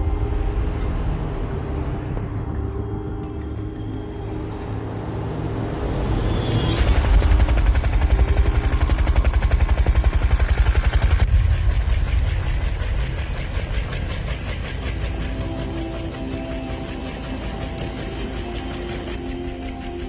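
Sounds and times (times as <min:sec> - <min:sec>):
sustained soundtrack music: 0:00.0 - 0:20.0
helicopter rotor chopping: 0:05.0 - 0:20.0.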